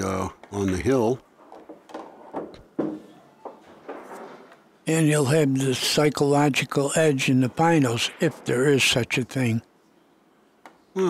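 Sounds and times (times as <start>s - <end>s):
pool balls knocking: 0.4s - 4.7s.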